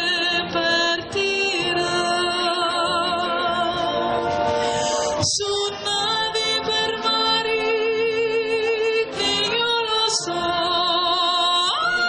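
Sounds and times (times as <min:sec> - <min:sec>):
wind band playing chords: 0:01.4 - 0:05.4.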